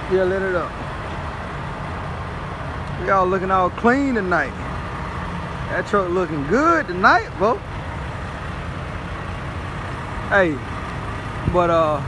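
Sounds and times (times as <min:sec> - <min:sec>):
diesel truck engine idling: 0:00.0 - 0:12.0.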